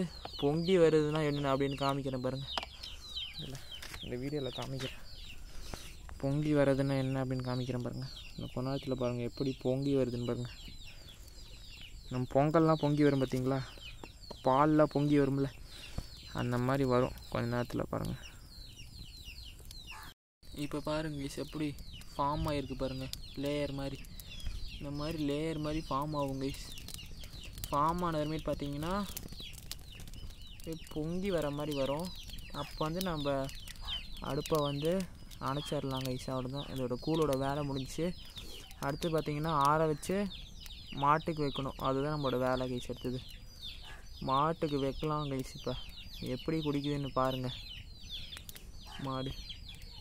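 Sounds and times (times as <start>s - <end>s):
man talking: 0.0s - 2.6s, 3.4s - 5.0s, 6.2s - 10.6s, 12.1s - 13.8s, 14.4s - 15.6s, 16.3s - 18.3s, 20.5s - 24.1s, 24.8s - 26.8s, 27.6s - 29.2s, 34.2s - 38.2s, 44.2s - 47.6s, 48.9s - 49.4s
birds chirping: 0.0s - 50.0s.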